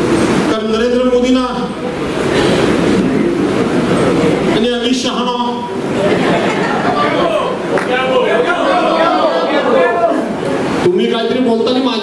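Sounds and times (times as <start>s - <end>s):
audience applause: 5.9s - 10.2s.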